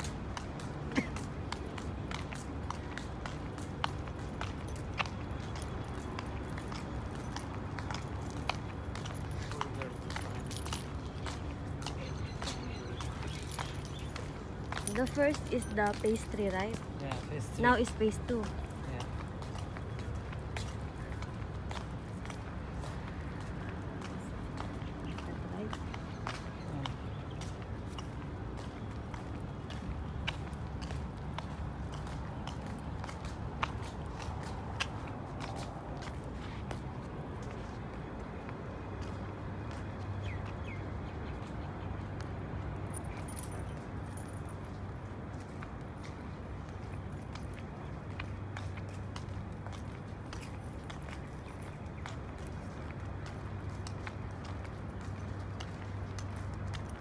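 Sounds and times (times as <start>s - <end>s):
footsteps: 0.0s - 40.6s, 41.2s - 57.0s.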